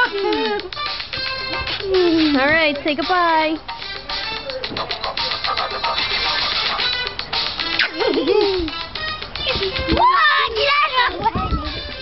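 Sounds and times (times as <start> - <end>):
background music: 0.0 - 12.0
girls shouting and squealing: 9.4 - 11.7.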